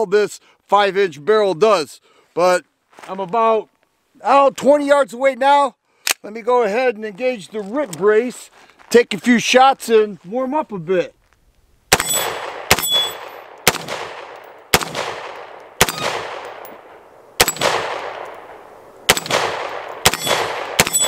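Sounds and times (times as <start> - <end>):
pistol shots echoing: 11.9 - 21.0.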